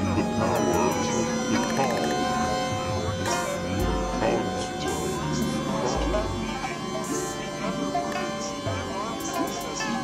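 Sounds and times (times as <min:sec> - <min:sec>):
dense layered music: 0:00.0 - 0:10.0.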